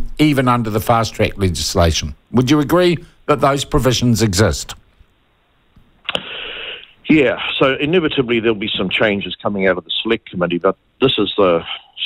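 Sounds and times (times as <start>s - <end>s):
man drawing breath: 6.1s - 7.0s.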